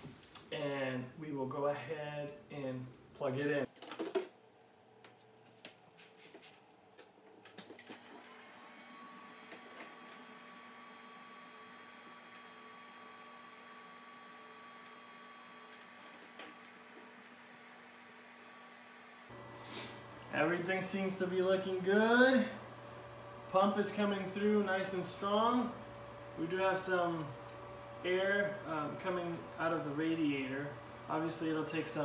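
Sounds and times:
pump and fans humming: 7.4 - 32.0.

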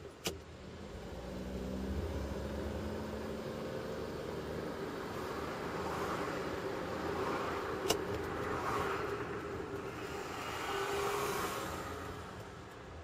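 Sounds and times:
car engine and road noise: 0.0 - 13.0.

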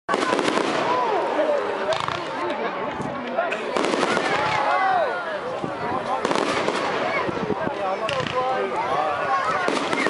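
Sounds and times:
fireworks bangs and crackles: 0.1 - 2.4, 3.2 - 5.0, 5.6 - 10.0
crowd chatter: 0.1 - 10.0.

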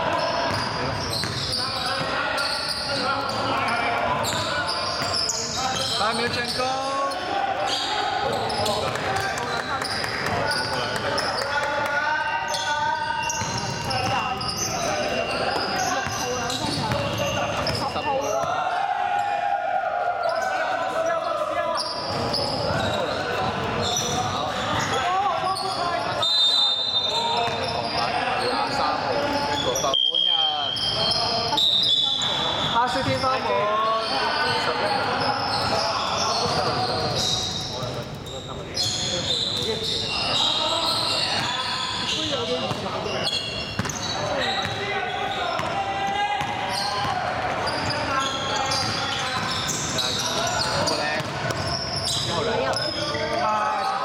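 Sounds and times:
players' voices: 0.0 - 54.0
basketball bouncing on wooden floor: 15.6 - 17.8.

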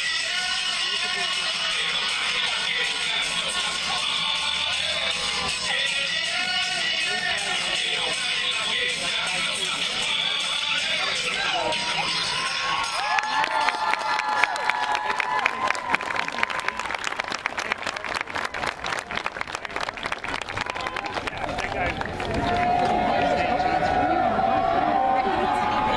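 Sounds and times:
crowd clapping and cheering: 11.0 - 25.9
voices shouting: 22.2 - 25.9.

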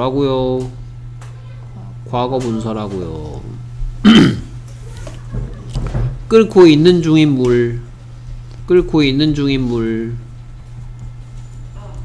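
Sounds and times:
man's throaty vocal sound: 4.0 - 4.5.

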